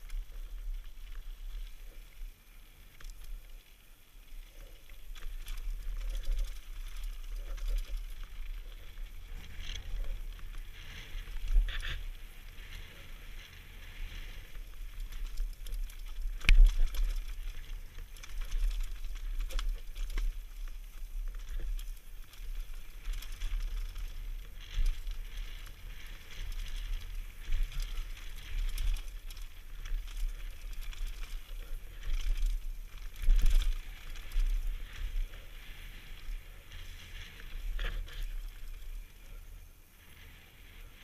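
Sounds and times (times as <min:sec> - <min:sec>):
bike rattling: 0:00.0 - 0:41.0
wind rumble on microphone: 0:04.3 - 0:41.0
tyres rolling over loose stones: 0:04.6 - 0:39.5.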